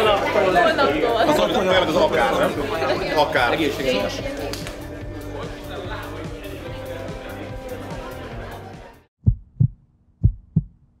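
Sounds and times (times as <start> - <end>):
heartbeat thumps: 9.2 - 11.0.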